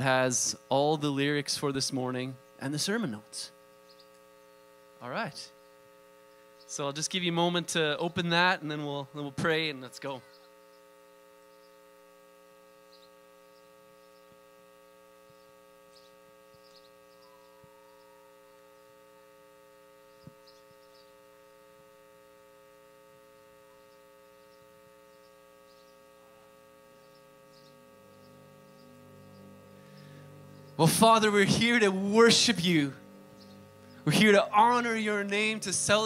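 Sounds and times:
faint electrical hum: 0:00.0 - 0:36.0
low tone: 0:17.0 - 0:36.0.

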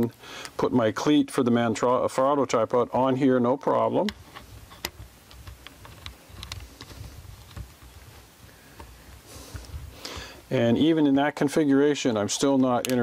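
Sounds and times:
metal plate clicks and ticks: 0:12.4 - 0:13.0.

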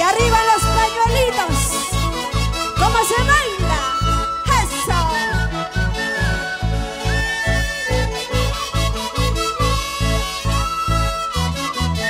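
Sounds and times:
keyboard: 0:00.0 - 0:12.0
lead melody: 0:00.0 - 0:12.0.

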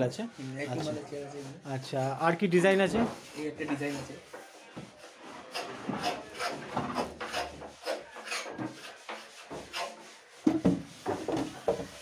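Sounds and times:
wooden chairs scraping: 0:02.7 - 0:09.9, 0:10.5 - 0:12.0
sharp wooden knocks: 0:10.4 - 0:12.0.

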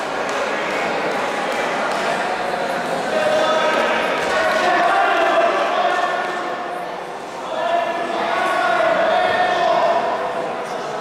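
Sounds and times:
voices echoing in hall: 0:00.0 - 0:11.0.

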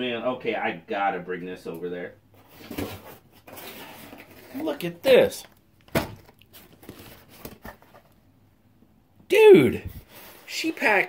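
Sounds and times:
cardboard box set down: 0:02.5 - 0:04.8.

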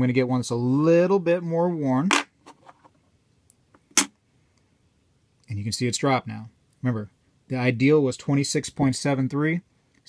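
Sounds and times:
coin set down on metal scale: 0:02.1 - 0:02.8.

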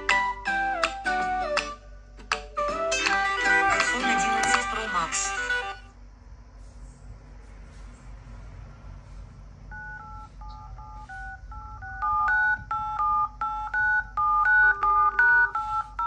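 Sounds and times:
phone keypad dtmf beeps: 0:09.7 - 0:16.0.

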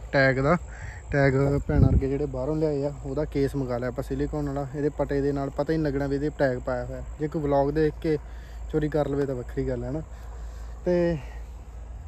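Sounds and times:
crickets chirping: 0:00.0 - 0:12.0
low steady rumble: 0:00.0 - 0:12.0.

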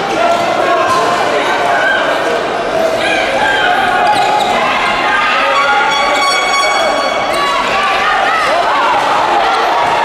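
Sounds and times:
voices in a hall: 0:00.0 - 0:10.0
shoes squeaking on court floor: 0:04.0 - 0:04.8.

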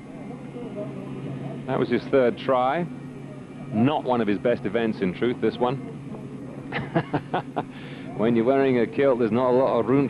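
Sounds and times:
low background noise: 0:00.0 - 0:10.0
man chuckling softly: 0:06.7 - 0:08.2.

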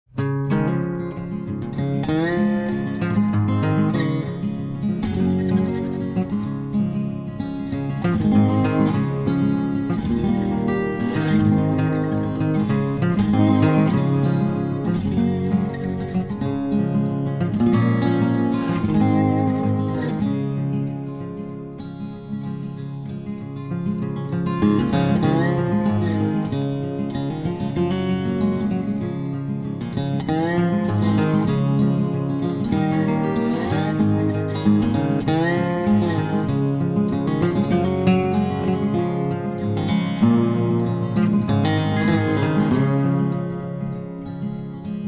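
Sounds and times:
strummed acoustic guitar music: 0:00.1 - 0:45.0.

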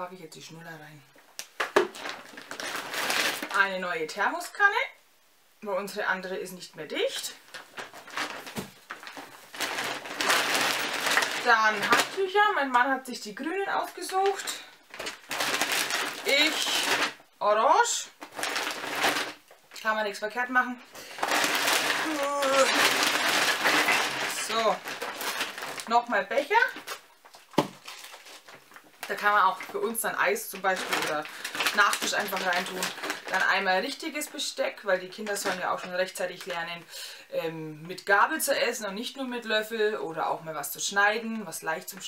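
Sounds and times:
plastic bag rustling: 0:01.6 - 0:03.8, 0:07.1 - 0:36.7.

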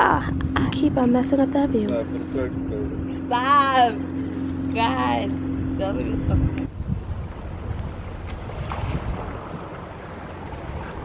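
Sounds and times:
wind buffeting microphone: 0:00.0 - 0:03.1, 0:05.5 - 0:11.0
faint water sounds: 0:00.0 - 0:11.0.

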